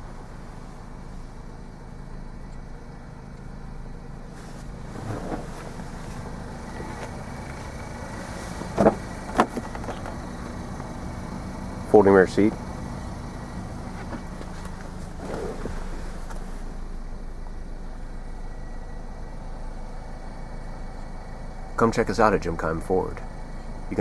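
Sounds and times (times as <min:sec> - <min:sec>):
car engine idling: 0:00.0 - 0:24.0.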